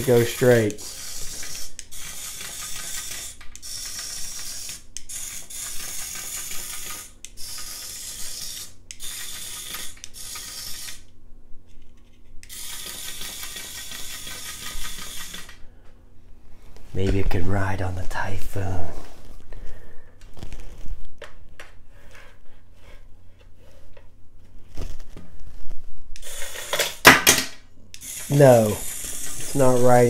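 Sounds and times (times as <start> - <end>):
toy gear motor whirring and clicking: 0.0 - 11.1, 12.4 - 15.6, 26.2 - 27.1, 27.9 - 30.0.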